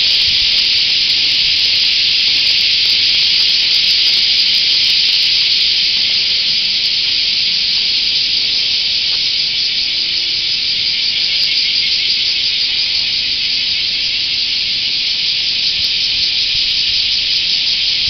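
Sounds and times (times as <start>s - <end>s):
cicadas droning: 0.0s - 18.0s.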